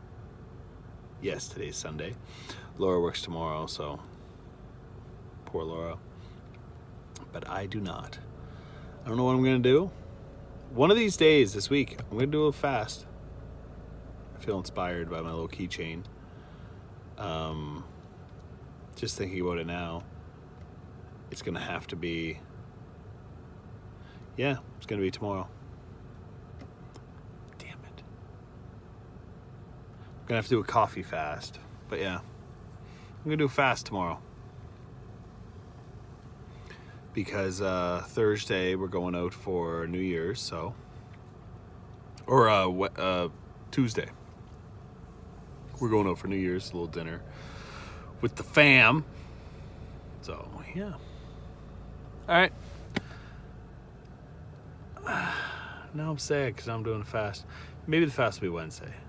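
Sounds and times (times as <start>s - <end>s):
low hum in car cabin: 0.0s - 59.0s
man sighing: 55.0s - 55.9s.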